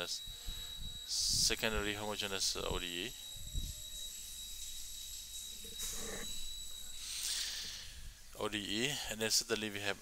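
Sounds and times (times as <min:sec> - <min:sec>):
electrical hum and hiss: 0:00.0 - 0:10.0
thin high whine: 0:00.0 - 0:10.0.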